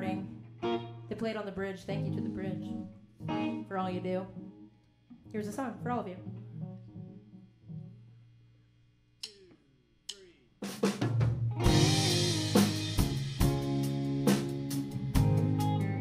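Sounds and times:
guitar: 0.0s - 8.1s, 11.4s - 16.0s
drum kit: 10.6s - 16.0s.

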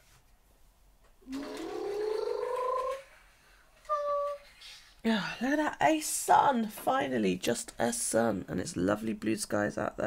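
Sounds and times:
chair creaking: 1.2s - 3.1s.

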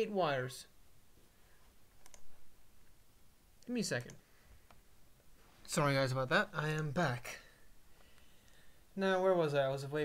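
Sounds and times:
faint room noise: 0.0s - 10.0s
computer mouse clicks: 2.0s - 2.4s.

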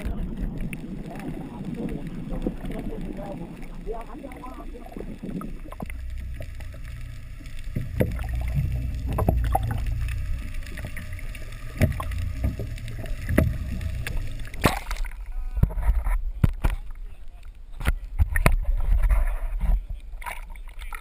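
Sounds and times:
rush of water: 0.0s - 21.0s
underwater low rumble: 0.0s - 21.0s
short underwater knocks: 7.7s - 9.9s, 11.7s - 16.8s.

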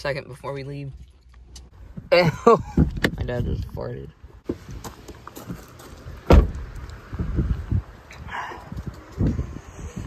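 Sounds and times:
footsteps on paving: 4.4s - 6.3s
car door shutting: 6.2s - 6.8s.

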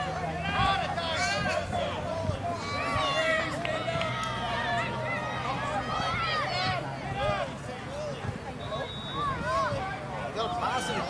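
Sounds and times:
voices shouting over one another: 0.0s - 11.0s.

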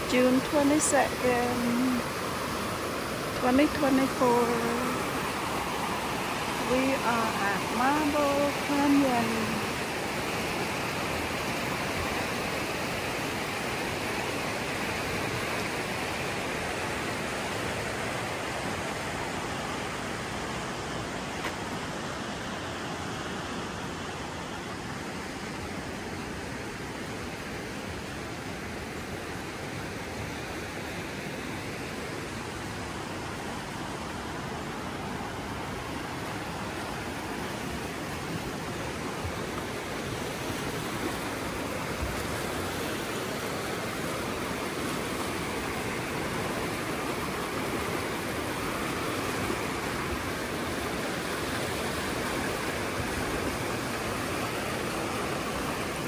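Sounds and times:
creek rushing through canyon: 0.0s - 56.0s.

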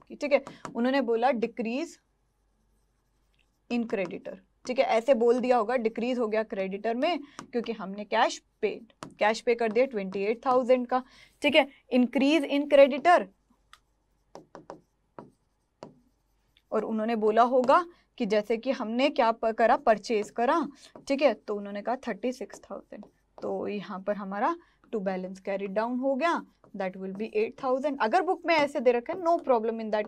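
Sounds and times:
woman's voice: 0.0s - 2.0s, 3.7s - 13.3s, 16.7s - 30.0s
faint writing on a board: 0.0s - 30.0s
chalk scratching on blackboard: 0.1s - 24.6s, 25.3s - 30.0s.

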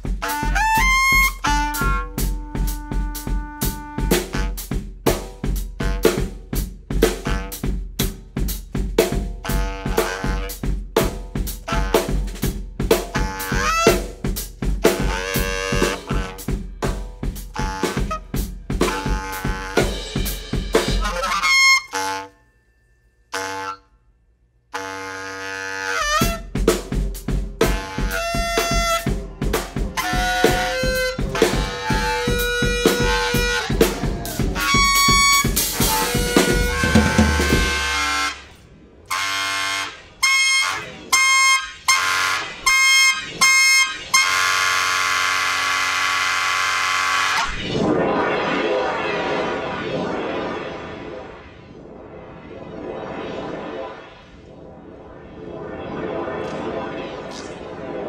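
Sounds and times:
clarinet playing: 0.2s - 4.6s, 9.5s - 10.6s, 13.1s - 14.0s, 15.0s - 16.4s, 17.5s - 20.1s, 20.9s - 22.5s, 23.3s - 23.9s, 24.8s - 26.4s, 27.7s - 29.1s, 30.0s - 38.5s, 39.1s - 47.4s.

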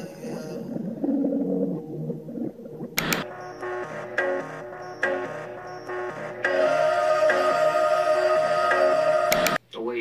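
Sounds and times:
background music: 0.0s - 9.7s.

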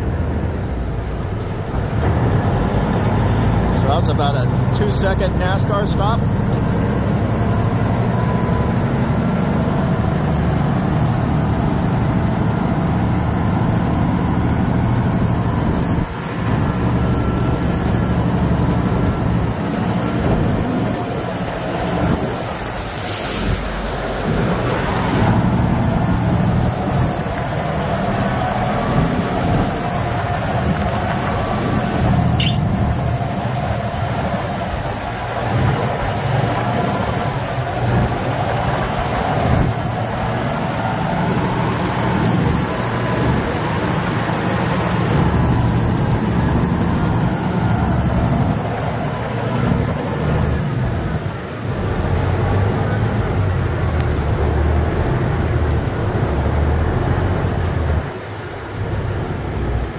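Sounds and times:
boat engine running: 0.0s - 59.9s.

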